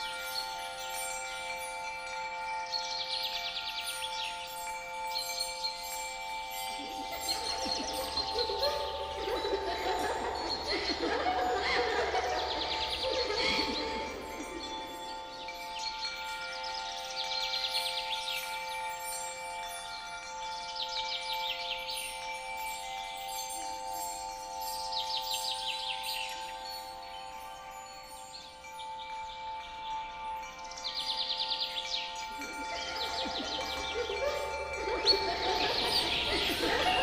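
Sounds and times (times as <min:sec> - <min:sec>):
shimmering chime-like drone: 0:00.0 - 0:37.0
birds chirping and calling: 0:02.7 - 0:18.9, 0:30.6 - 0:37.0
bird trills: 0:06.5 - 0:16.0, 0:30.8 - 0:37.0.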